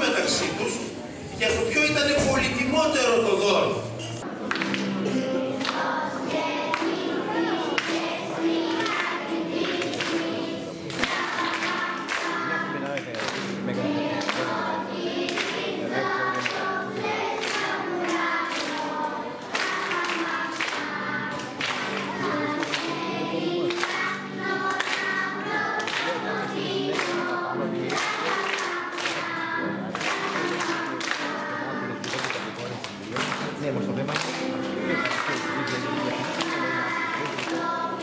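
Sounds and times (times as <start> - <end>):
choir singing over music: 4.2 - 33.5, 34.2 - 38.0.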